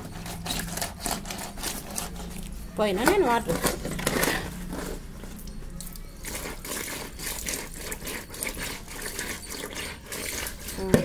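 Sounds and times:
fish scraping on concrete: 0:00.0 - 0:11.0.

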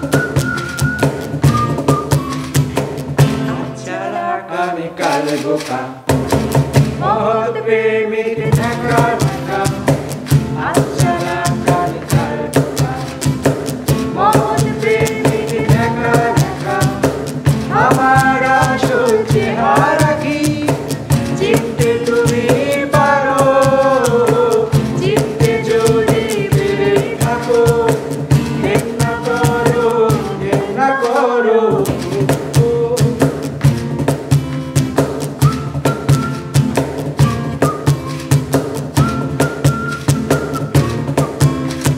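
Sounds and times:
strummed acoustic guitar: 0:00.0 - 0:07.3, 0:08.4 - 0:41.9
cajon beat: 0:00.0 - 0:07.5, 0:08.3 - 0:41.9
group of voices singing: 0:03.3 - 0:06.1, 0:06.9 - 0:13.4, 0:14.0 - 0:33.3.

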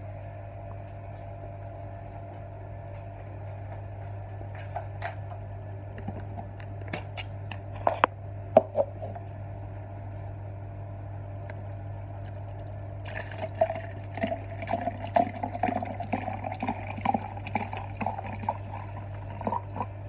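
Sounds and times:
steady low hum: 0:00.0 - 0:20.0
juice pouring into a cup: 0:12.2 - 0:20.0.

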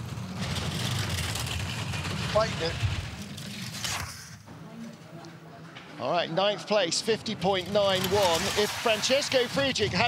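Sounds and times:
bobsleigh runners rumbling on ice: 0:00.0 - 0:03.2, 0:07.3 - 0:10.0.

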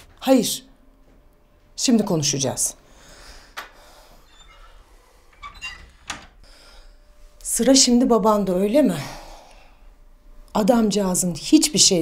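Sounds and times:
door squeak and click: 0:04.3 - 0:06.4.

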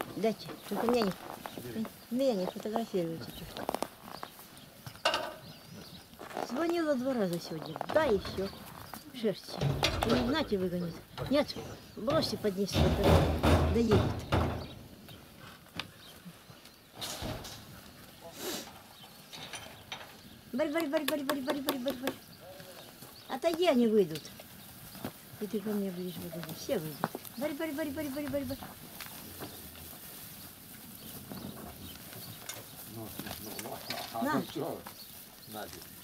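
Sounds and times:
sheep rustling and shuffling: 0:00.0 - 0:36.0.

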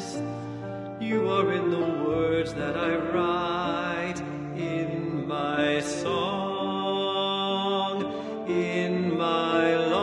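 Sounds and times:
slow song with held notes: 0:00.0 - 0:10.0.

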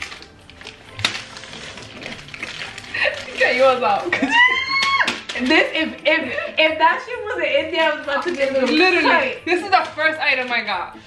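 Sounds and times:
packaging rustling: 0:00.0 - 0:06.0, 0:07.8 - 0:10.6.

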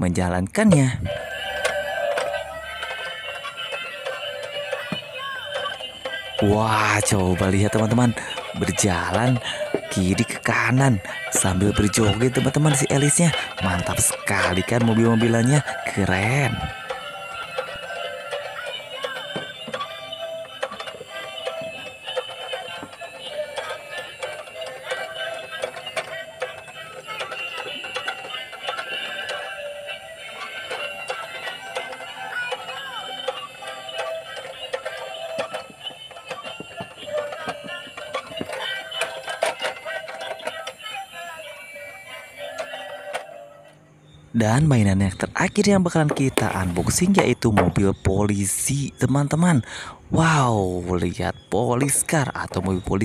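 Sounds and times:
toy electronic tune with singing: 0:00.7 - 0:53.0.

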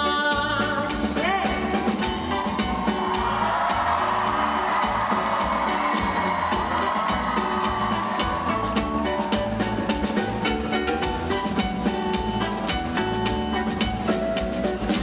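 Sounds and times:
live band playing pop song: 0:00.0 - 0:15.0
audience cheering and whooping: 0:02.0 - 0:13.3.

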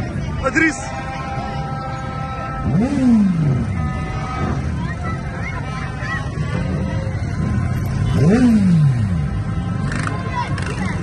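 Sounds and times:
traffic and crowd roar: 0:00.0 - 0:11.0
horns held on: 0:00.5 - 0:11.0.

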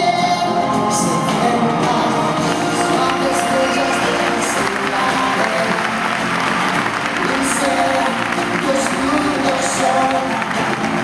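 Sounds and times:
dance music: 0:00.0 - 0:11.0
audience applauding and cheering: 0:00.9 - 0:11.0.

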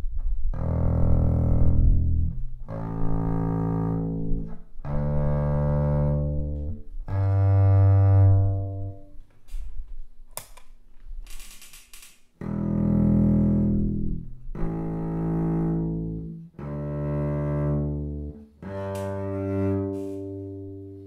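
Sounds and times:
bowed double bass low notes: 0:00.0 - 0:09.2, 0:12.4 - 0:21.0.

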